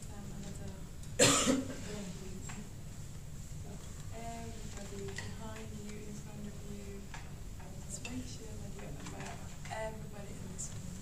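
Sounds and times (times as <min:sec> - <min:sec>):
person coughing: 0:01.2 - 0:01.9.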